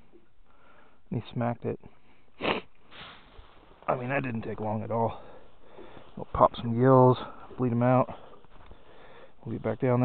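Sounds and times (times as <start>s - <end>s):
soft breath: 0.5s - 1.0s, 5.1s - 6.2s, 8.1s - 9.4s
man sniffing: 2.4s - 3.3s.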